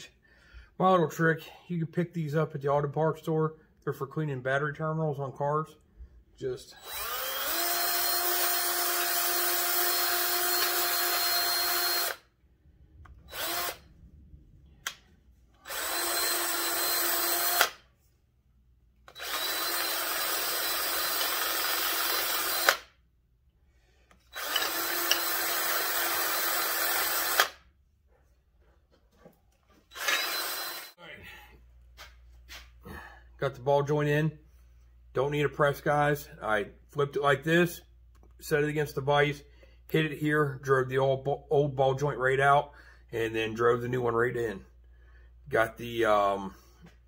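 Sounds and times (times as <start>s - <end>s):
power drill whining: 6.7s - 12.3s, 13.2s - 13.9s, 15.6s - 17.8s, 19.0s - 22.9s, 24.1s - 27.6s, 29.8s - 31.0s.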